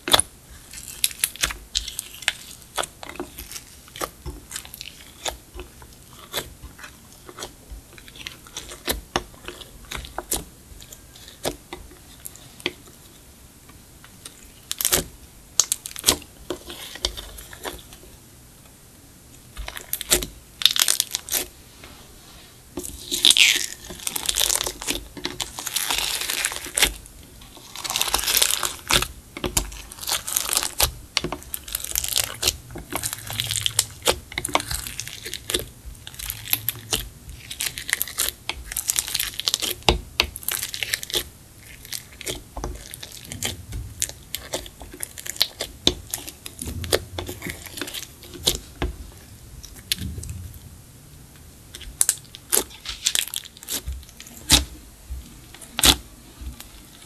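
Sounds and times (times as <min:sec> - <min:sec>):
slime crackling and popping: 0:00.0 - 0:11.6, 0:22.9 - 0:48.8.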